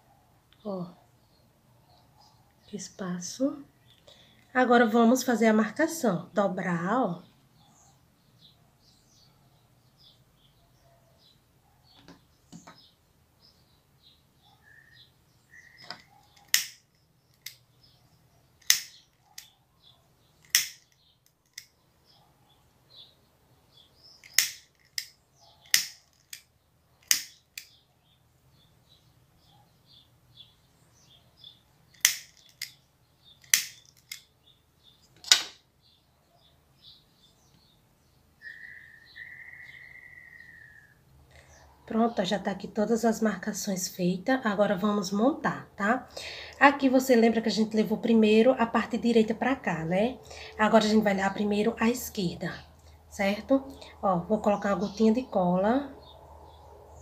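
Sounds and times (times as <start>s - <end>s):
faint bird chirps: 7.1s - 26.1s, 26.9s - 42.3s
lighter clicking: 20.5s - 20.8s.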